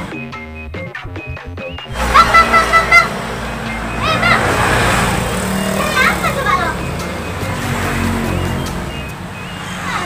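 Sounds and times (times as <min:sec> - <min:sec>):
high-pitched voices calling out: 0:01.9 - 0:07.1.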